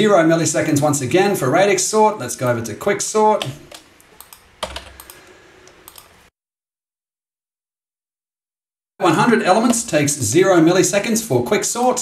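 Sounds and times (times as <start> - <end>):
keyboard and mouse clicks: 3.4 - 6.2.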